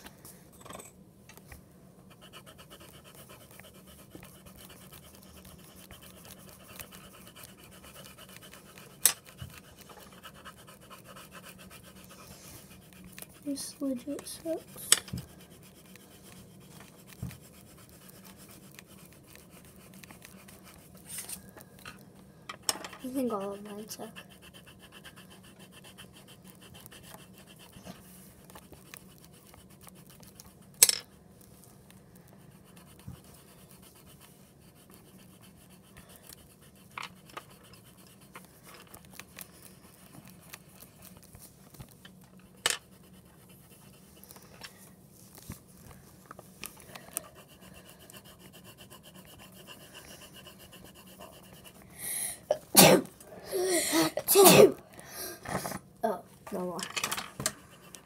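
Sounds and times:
girl sneezing: 52.5 - 54.8.

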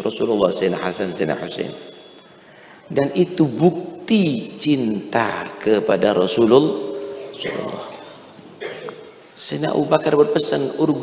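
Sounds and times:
man speaking: 0.0 - 1.9, 2.8 - 8.2, 9.4 - 11.0
man coughing into microphone: 7.3 - 9.2.

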